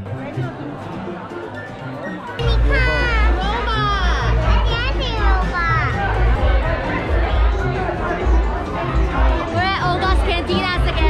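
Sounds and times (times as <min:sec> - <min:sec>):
bar music with heavy bass: 0:00.0 - 0:11.0
children's high voices: 0:02.4 - 0:06.2.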